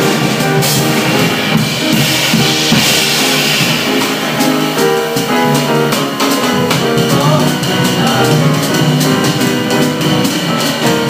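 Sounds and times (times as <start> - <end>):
acoustic piano: 0.0 - 11.0
cymbal wash: 0.0 - 11.0
snare and bass drum hits: 0.0 - 11.0.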